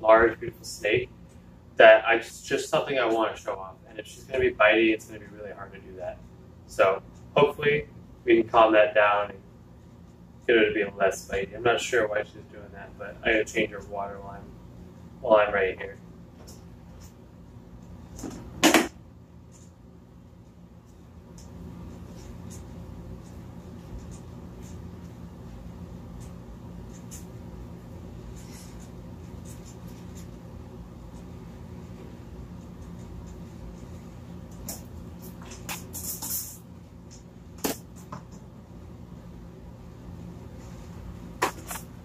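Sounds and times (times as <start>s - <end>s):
steady low hum: 0.0s - 42.0s
sharp knock: 18.6s - 18.9s.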